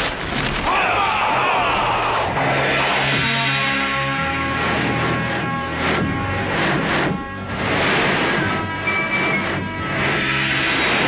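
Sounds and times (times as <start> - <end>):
dramatic soundtrack music: 1.7 - 11.0
whooshing sound effects: 2.3 - 11.0.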